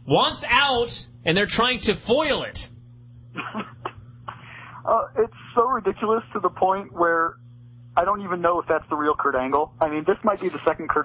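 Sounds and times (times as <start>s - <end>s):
person speaking: 0.0s - 2.8s, 8.0s - 11.0s
breathy exhale: 4.4s - 4.9s.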